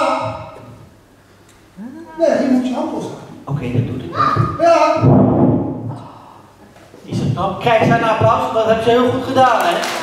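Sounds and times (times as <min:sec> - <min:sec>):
person speaking: 0:07.0 - 0:09.8.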